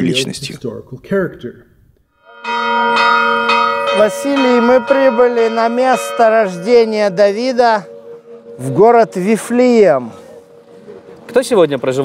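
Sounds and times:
church bells ringing: 0:02.2 - 0:12.0.

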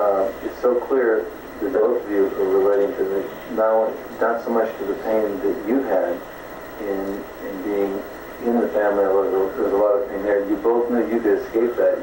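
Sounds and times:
man speaking on tape recording: 0:00.0 - 0:12.0.

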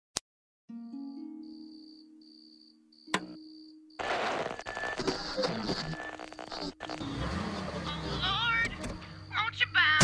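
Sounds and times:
crickets chirping: 0:01.0 - 0:07.2, 0:07.9 - 0:10.0.

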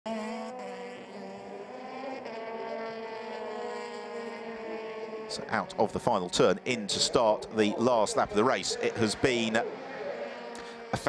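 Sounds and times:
racing car engines at high revs: 0:00.1 - 0:11.0.

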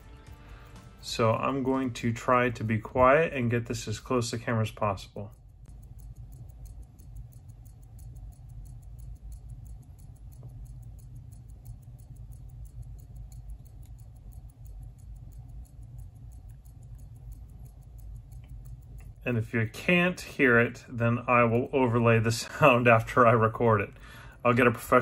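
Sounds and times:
watch ticking: 0:00.0 - 0:25.0.

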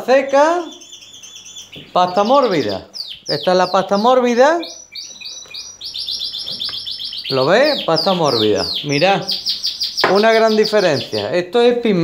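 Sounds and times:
canary singing: 0:00.0 - 0:11.6.

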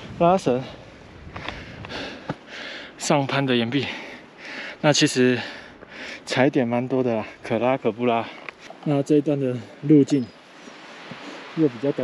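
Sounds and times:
hiker breathing: 0:00.0 - 0:03.1, 0:03.7 - 0:06.4, 0:08.2 - 0:08.8, 0:10.4 - 0:11.6
steps on rocky trail: 0:01.2 - 0:02.5.

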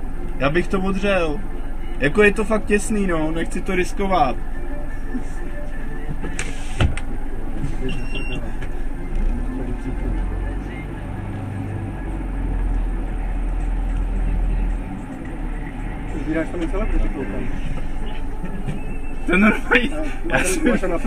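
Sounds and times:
bus diesel engine idling: 0:00.0 - 0:21.0.

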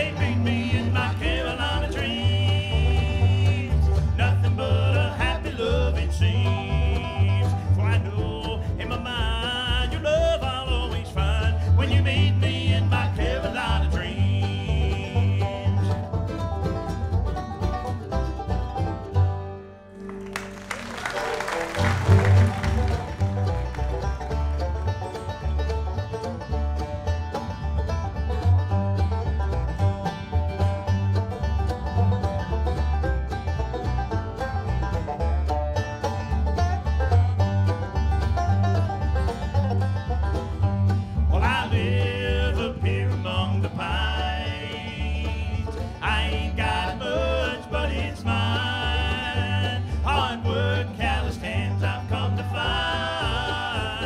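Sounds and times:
acoustic guitar: 0:00.0 - 0:54.0
banjo: 0:00.0 - 0:54.0
mandolin: 0:00.0 - 0:54.0
upright bass: 0:00.0 - 0:54.0.

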